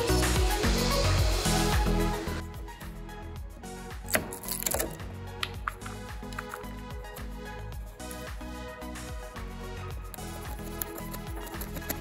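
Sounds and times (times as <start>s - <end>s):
background music: 0.0s - 12.0s
wood slivers snapping: 4.1s - 6.7s, 10.2s - 12.0s.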